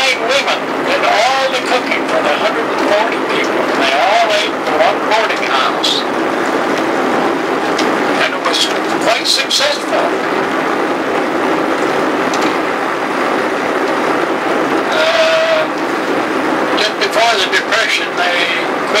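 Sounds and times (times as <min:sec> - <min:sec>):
car road and engine noise: 0:00.0 - 0:19.0
faint voice murmuring: 0:14.9 - 0:15.8.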